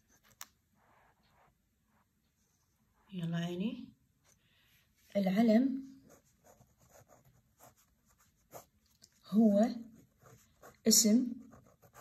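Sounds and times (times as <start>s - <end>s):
pen scratching on paper: 6.0s - 8.7s, 9.4s - 12.0s.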